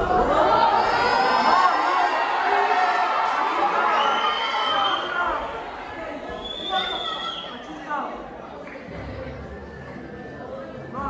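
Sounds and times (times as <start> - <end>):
audience chatter in hall: 0.0 - 11.0.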